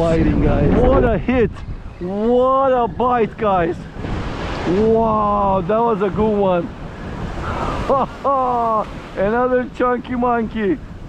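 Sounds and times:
wind on microphone: 0.0s - 11.0s
waves breaking on beach: 2.8s - 11.0s
person exclaiming: 7.8s - 8.9s.

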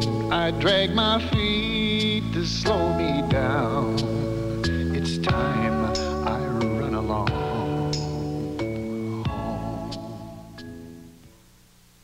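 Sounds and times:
soft instrumental film score: 0.0s - 11.3s.

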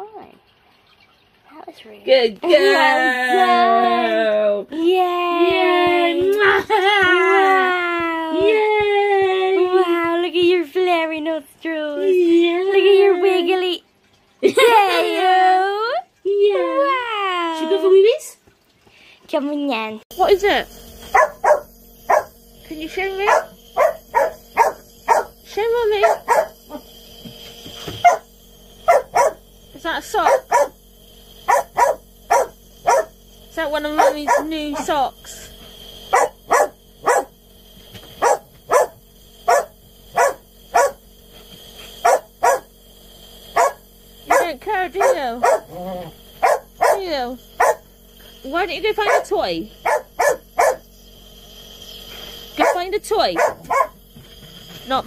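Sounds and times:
small dog barking sharply: 21.2s - 22.3s, 28.9s - 29.4s, 31.5s - 33.1s, 36.2s - 37.3s, 38.2s - 41.0s, 42.0s - 42.7s, 43.6s - 45.7s, 49.8s - 50.8s, 53.4s - 54.0s.

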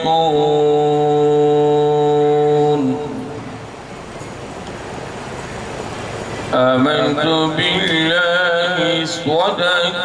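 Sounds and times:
man chanting into microphone: 0.0s - 3.6s, 6.5s - 10.0s.

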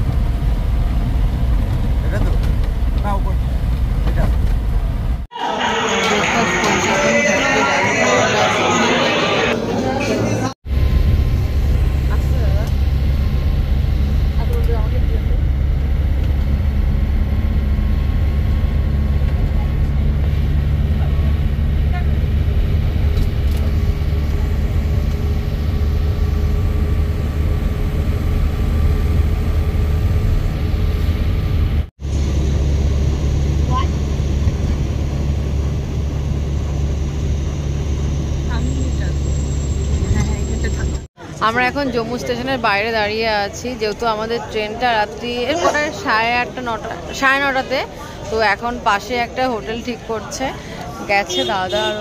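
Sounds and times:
bus engine drone and road noise: 0.0s - 52.0s.

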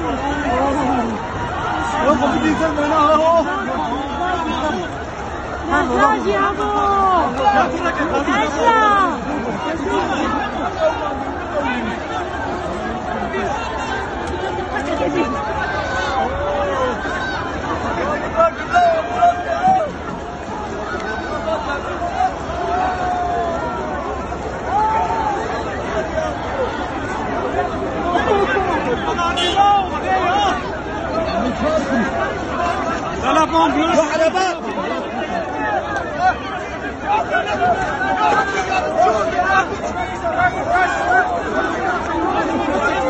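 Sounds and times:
crowd shouting and talking: 0.0s - 43.0s.

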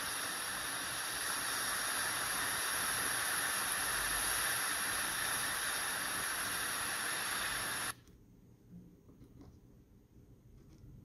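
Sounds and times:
hiss-like noise from loudspeaker: 0.0s - 8.0s.

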